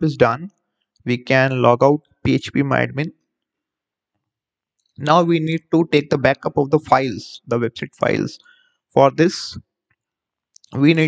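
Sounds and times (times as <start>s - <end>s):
man speaking: 0.0s - 0.5s, 1.1s - 3.1s, 5.0s - 8.4s, 9.0s - 9.6s, 10.6s - 11.0s.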